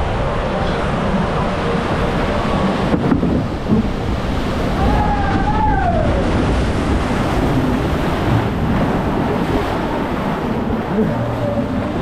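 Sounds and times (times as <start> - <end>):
water rushing and churning: 0.0 - 12.0
wind buffeting microphone: 0.0 - 12.0.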